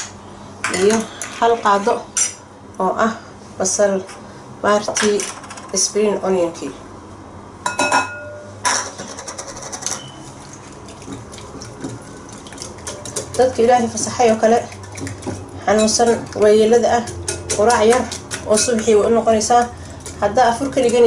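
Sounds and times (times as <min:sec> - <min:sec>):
eggs whisked in glass bowl: 0:09.2 - 0:21.0.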